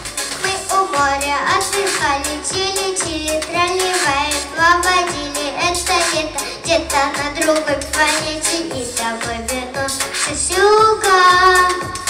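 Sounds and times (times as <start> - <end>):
backing music with a steady beat: 0.0 - 12.0
girl singing into a microphone: 0.4 - 12.0.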